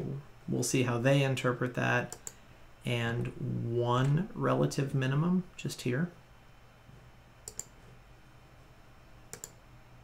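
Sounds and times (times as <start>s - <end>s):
computer mouse clicks: 2.1s - 2.4s, 7.4s - 7.8s, 9.3s - 9.6s.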